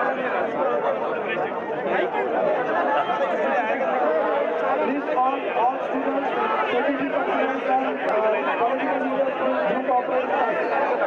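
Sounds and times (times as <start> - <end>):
crowd babble: 0.0 - 11.0.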